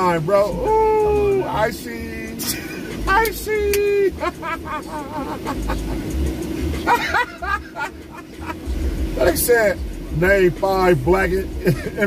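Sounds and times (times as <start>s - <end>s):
car engine rumble: 0.0s - 12.0s
man laughing: 3.9s - 6.2s, 6.8s - 8.6s, 11.6s - 12.0s.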